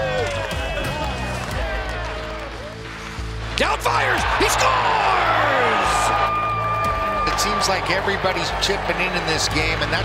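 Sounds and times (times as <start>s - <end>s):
background music with bass: 0.0s - 10.0s
men shouting and cheering: 0.0s - 10.0s.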